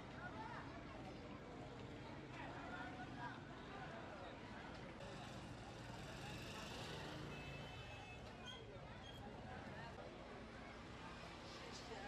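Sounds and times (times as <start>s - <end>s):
street traffic: 5.0s - 8.5s.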